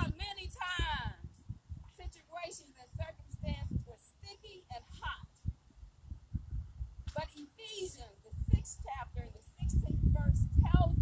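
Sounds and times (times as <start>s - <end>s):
woman's voice through small speaker: 0.0s - 5.5s, 7.1s - 11.0s
low thumps on microphone: 5.4s - 7.3s.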